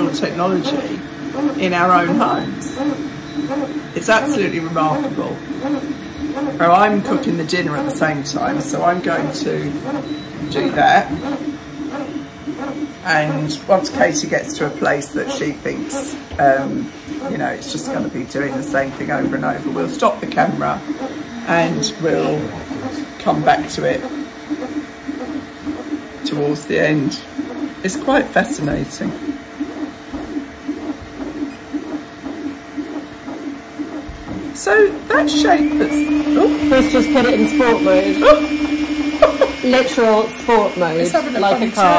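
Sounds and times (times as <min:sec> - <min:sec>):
printer stepper motors whining: 0:00.0 - 0:41.9
steady fan hum: 0:00.0 - 0:41.9.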